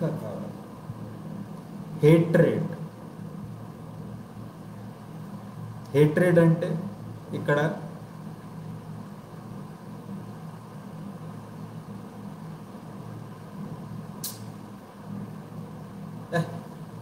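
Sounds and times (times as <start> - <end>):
steady low hum: 0.0 - 17.0
brief sharp click: 14.2 - 14.5.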